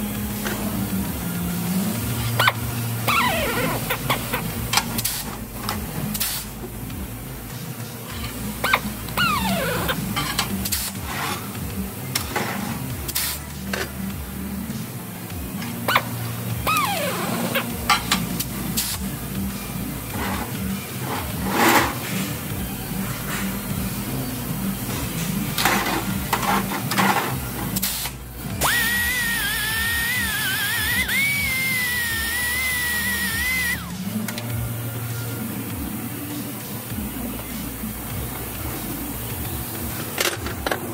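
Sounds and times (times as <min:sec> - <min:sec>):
clanks and knocks of shop work: 0:08.0 - 0:14.2, 0:15.4 - 0:24.1, 0:24.9 - 0:28.2, 0:38.1 - 0:40.9.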